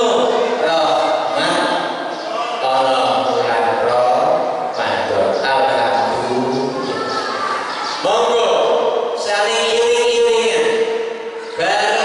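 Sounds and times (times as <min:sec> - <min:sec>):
man speaking into a microphone: 0:00.0 - 0:07.0, 0:08.0 - 0:12.0.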